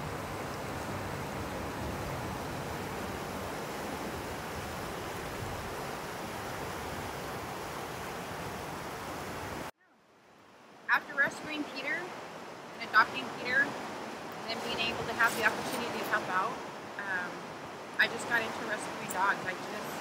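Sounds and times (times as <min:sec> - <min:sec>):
river rushing over rocks: 0:00.0 - 0:09.7, 0:10.3 - 0:20.0.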